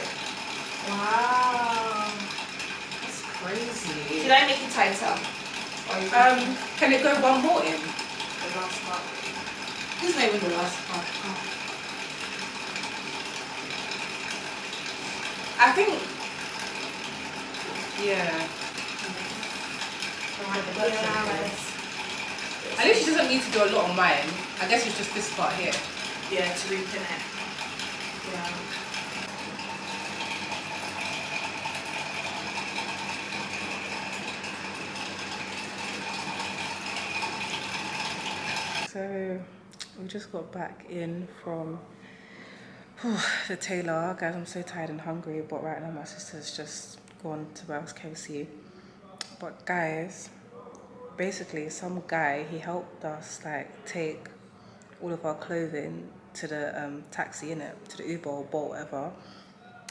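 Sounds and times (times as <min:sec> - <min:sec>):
small machine clattering: 0:00.0 - 0:38.9.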